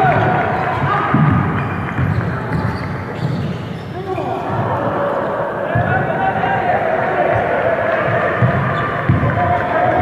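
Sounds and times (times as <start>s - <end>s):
basketball bouncing on gym floor: 0.1s - 3.7s, 7.3s - 9.6s.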